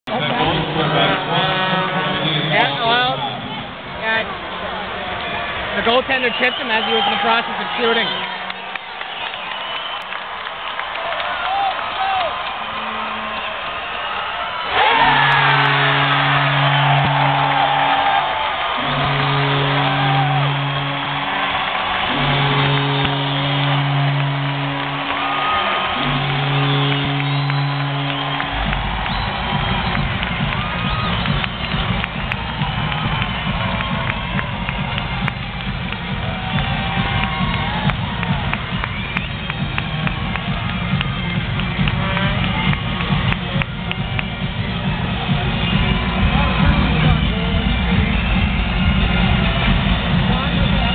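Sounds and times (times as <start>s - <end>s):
crowd cheering: 0.1s - 50.9s
goal horn blasts: 14.7s - 38.2s
arena music with steady beat: 25.9s - 50.9s.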